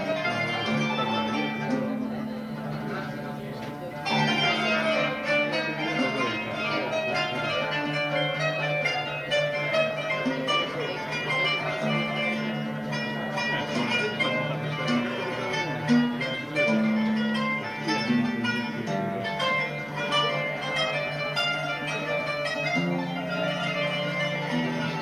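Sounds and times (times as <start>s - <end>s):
plucked string instruments melody: 0.0s - 25.0s.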